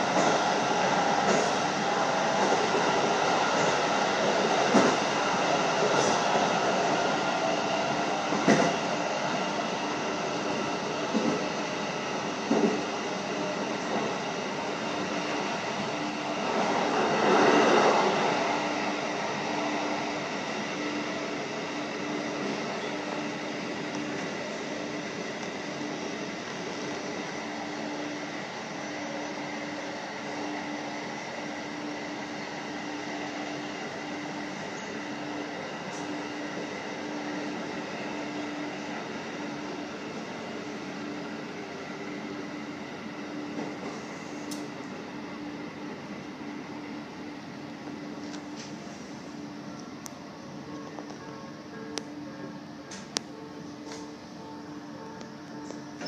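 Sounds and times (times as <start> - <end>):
train running hum: 0.0 - 56.0.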